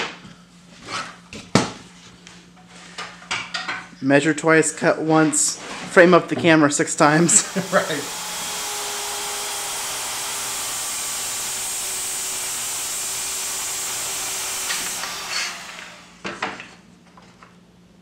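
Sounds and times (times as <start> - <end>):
circular saw cutting plywood: 6.9 - 16.5.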